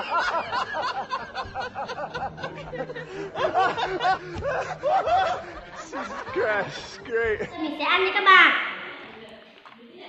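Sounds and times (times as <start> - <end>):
man laughing loudly: 0.0 - 7.5.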